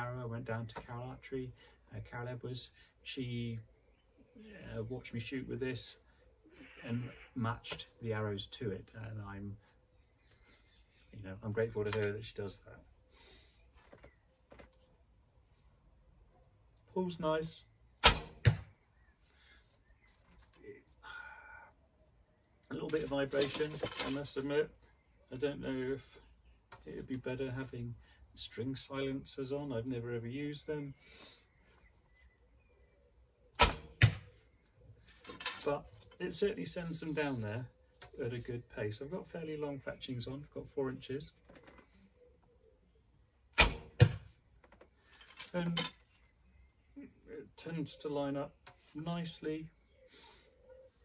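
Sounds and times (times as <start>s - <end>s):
arrow striking target: 18.0s - 18.7s, 33.6s - 34.3s, 43.6s - 44.3s
sharp knock: 43.6s - 44.2s
bowstring slap: 43.6s - 44.3s.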